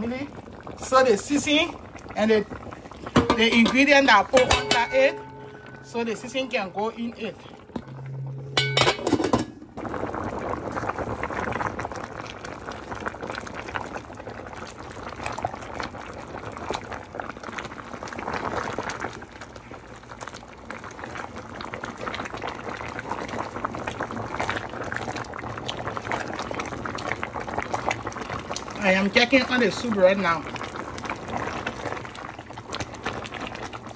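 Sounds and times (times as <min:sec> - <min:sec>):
soup boiling with bubbling pops: 0:00.0 - 0:33.9.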